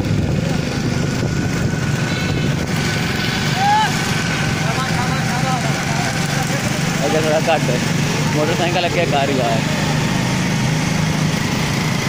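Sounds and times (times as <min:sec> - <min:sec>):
small motorcycle engine running: 0:00.0 - 0:12.0.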